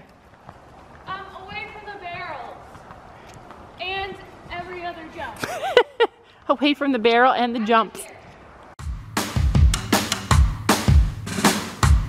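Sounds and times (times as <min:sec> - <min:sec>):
music with drum beat: 0:08.8 - 0:12.0.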